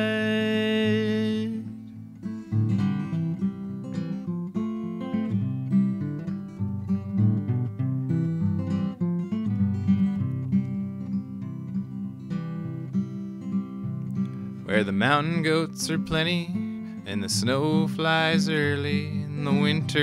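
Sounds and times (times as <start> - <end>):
acoustic guitar strumming and picking: 0.0 - 20.0.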